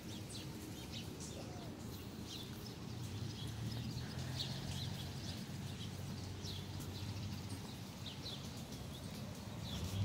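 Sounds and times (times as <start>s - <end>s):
bird chirp: 0.0s - 10.0s
low outdoor rumble: 8.5s - 10.0s.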